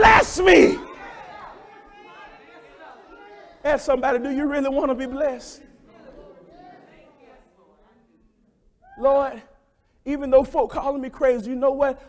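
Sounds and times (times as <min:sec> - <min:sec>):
faint murmured voices: 0:00.8 - 0:03.8, 0:05.1 - 0:09.0.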